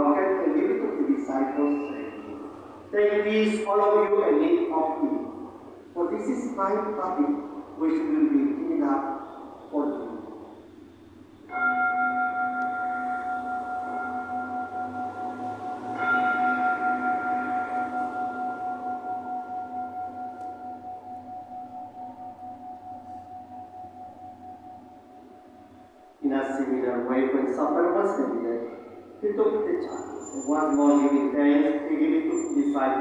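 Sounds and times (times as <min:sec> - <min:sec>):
altar bell ringing: 0:11.5 - 0:33.0.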